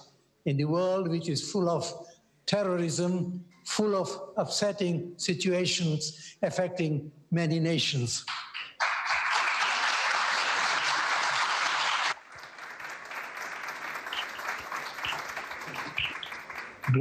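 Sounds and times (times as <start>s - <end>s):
audience applauding: 8.3s - 17.0s.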